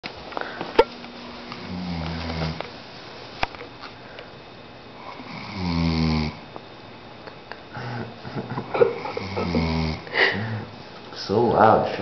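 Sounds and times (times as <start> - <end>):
man snoring: 1.6 - 2.6, 5.0 - 6.4, 8.9 - 10.7.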